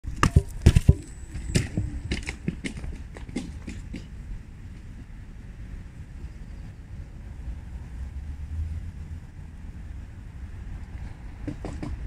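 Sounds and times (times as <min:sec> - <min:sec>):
footsteps on concrete steps: 0:00.2 - 0:04.1
phone knocking on concrete: 0:11.4 - 0:12.0.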